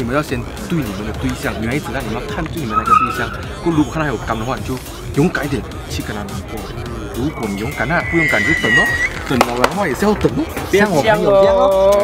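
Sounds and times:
background music: 0:00.0 - 0:12.0
man talking: 0:00.0 - 0:12.0
brief high squeal: 0:02.7 - 0:03.4, 0:07.3 - 0:09.3.

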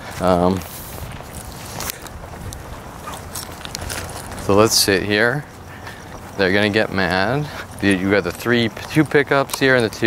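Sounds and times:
footsteps on grass: 0:00.0 - 0:10.0
handheld camera rustling: 0:00.0 - 0:10.0.

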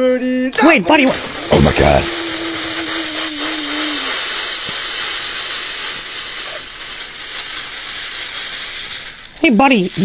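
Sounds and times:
cola foaming and fizzing: 0:01.2 - 0:09.4.

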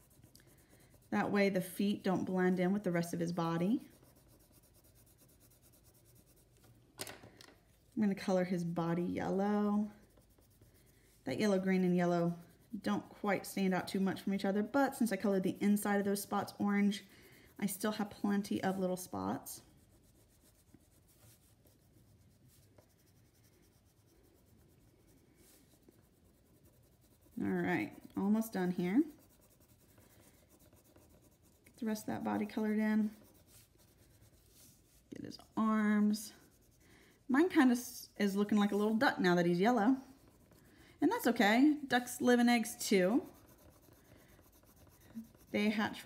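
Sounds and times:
coloring tool scratching paper: 0:00.0 - 0:06.7, 0:08.0 - 0:46.0.

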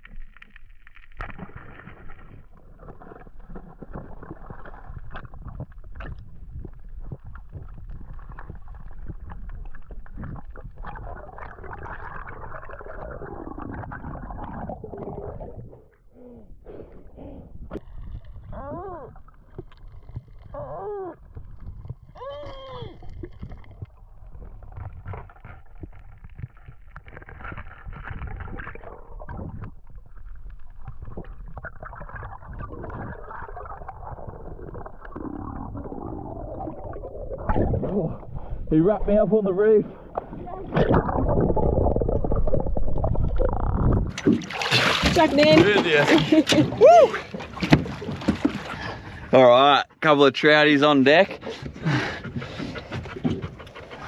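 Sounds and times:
water rushing and bubbling underwater: 0:00.0 - 0:54.0.

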